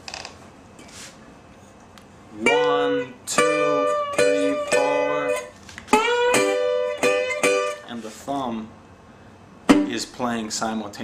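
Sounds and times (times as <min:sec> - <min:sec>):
soft scrape: 0:00.8 - 0:01.8, 0:07.9 - 0:08.4
faint handling rustle: 0:07.9 - 0:08.6.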